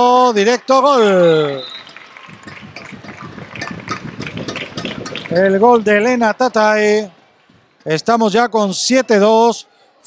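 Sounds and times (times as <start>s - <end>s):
crowd applause: 0.0s - 7.6s.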